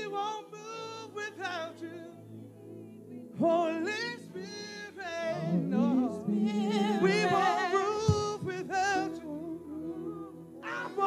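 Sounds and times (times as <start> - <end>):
singers singing loudly: 5.0 - 11.0.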